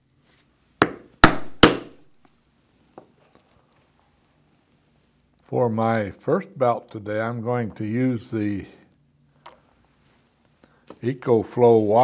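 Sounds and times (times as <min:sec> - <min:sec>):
mallet striking metal punch: 0:00.8 - 0:02.0.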